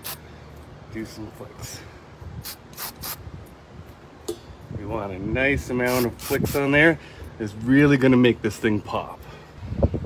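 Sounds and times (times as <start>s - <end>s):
spray paint can hissing: 0.0s - 0.2s, 2.4s - 3.2s, 5.8s - 6.7s.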